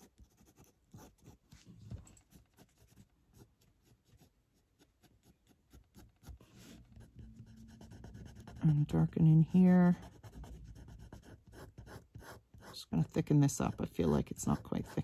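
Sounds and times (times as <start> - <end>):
ink pen scratching on paper: 0.0 - 1.4, 2.3 - 15.0.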